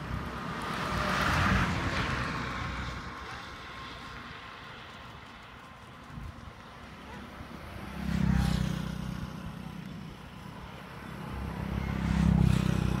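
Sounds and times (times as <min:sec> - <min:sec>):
vehicles passing close by: 0:00.0 - 0:13.0.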